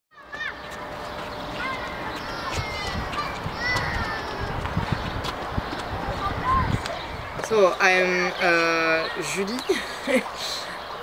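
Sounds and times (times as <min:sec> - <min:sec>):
outdoor ambience: 0:00.1 - 0:11.0.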